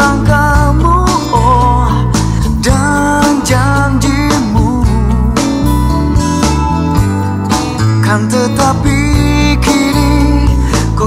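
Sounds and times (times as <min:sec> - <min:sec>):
pop-rock band music: 0:00.0 - 0:11.0.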